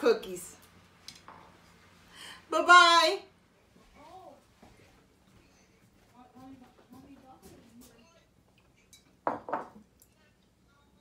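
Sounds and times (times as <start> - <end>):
crockery clunks on countertop: 9.2 - 9.8.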